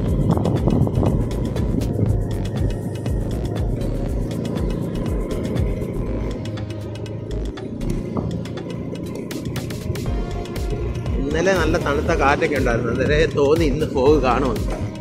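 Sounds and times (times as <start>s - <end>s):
background music: 0.0s - 15.0s
vehicle engine and road rumble: 0.0s - 15.0s.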